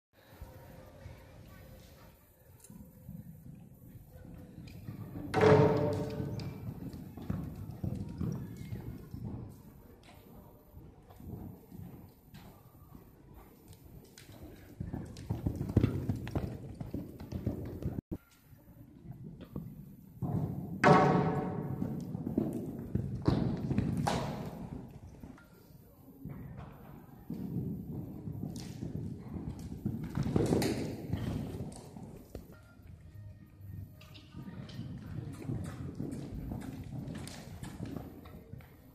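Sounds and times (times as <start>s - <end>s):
horse hoofbeats on sand: 3.4s - 18.0s, 19.2s - 25.6s, 26.2s - 38.9s.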